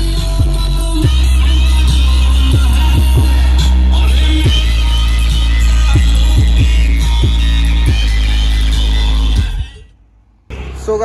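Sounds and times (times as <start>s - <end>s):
loud dance music with heavy bass: 0.0s - 9.8s.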